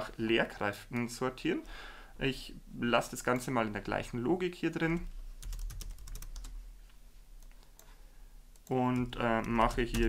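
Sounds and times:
computer keyboard typing: 4.9 - 6.6, 8.6 - 10.0.

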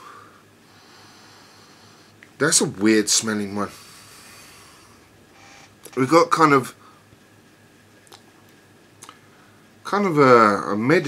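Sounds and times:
man breathing: 0.0 - 2.2, 3.7 - 5.8.

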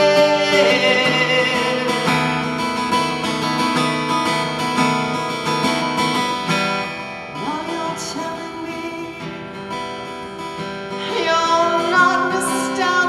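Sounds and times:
acoustic guitar strumming: 0.0 - 13.0.

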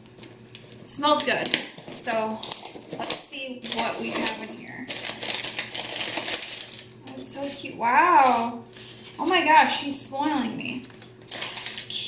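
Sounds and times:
paper wrapping rustling: 1.8 - 9.6, 10.7 - 12.0.

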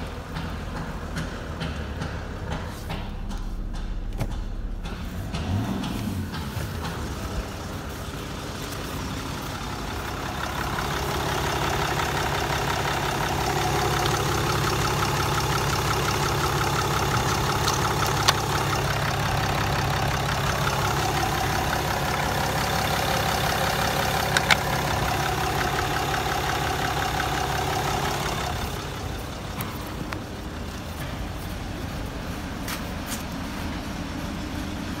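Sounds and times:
diesel engine idling: 0.0 - 35.0
sharp clicks: 24.2 - 24.9.

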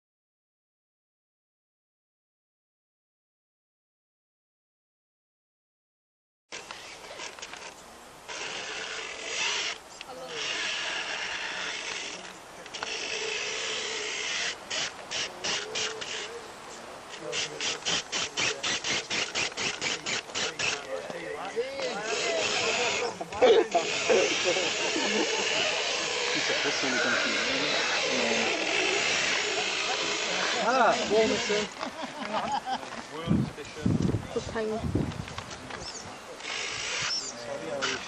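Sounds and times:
small electric motor running: 6.5 - 7.7, 8.3 - 16.4, 17.3 - 31.8, 36.4 - 38.0.

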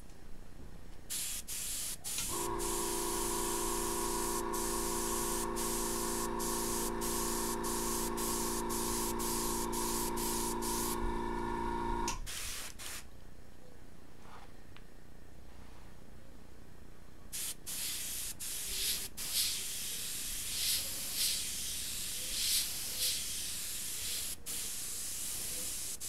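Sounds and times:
airbrush spraying hiss: 1.1 - 11.2, 12.2 - 13.1, 17.4 - 26.0
air compressor humming: 2.0 - 12.4.

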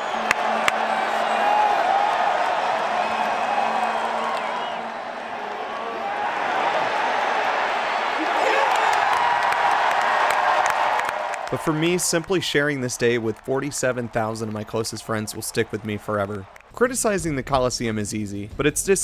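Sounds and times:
stadium crowd cheering and clapping: 0.0 - 18.4.

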